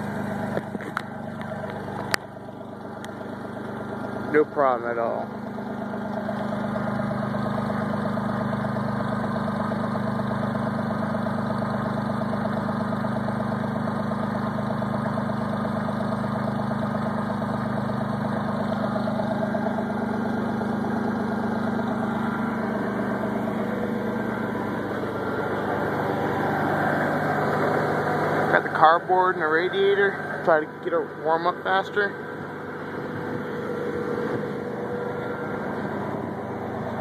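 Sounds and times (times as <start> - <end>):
truck engine idling: 0.0 - 37.0.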